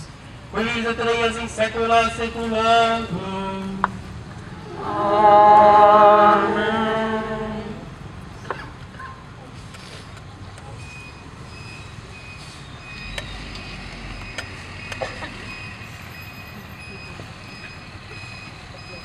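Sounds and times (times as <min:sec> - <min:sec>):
low hum of crowd: 0:00.2 - 0:12.3.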